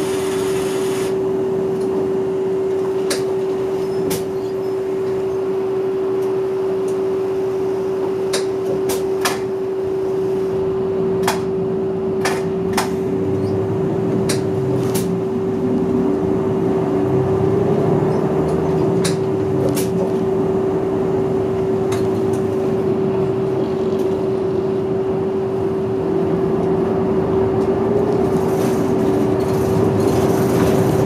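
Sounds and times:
bus engine running: 0.0s - 31.0s.

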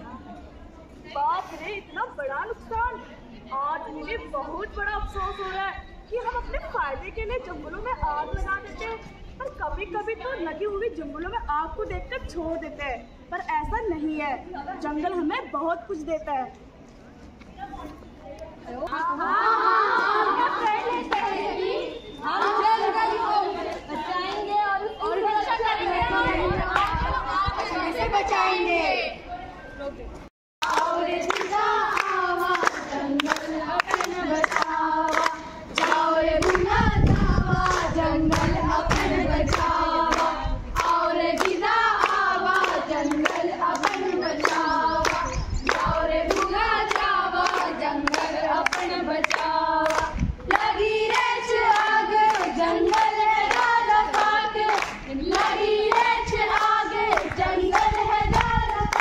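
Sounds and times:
young women singing in unison: 18.9s - 29.0s, 30.6s - 59.0s
hands clapping steady beat: 30.6s - 59.0s.

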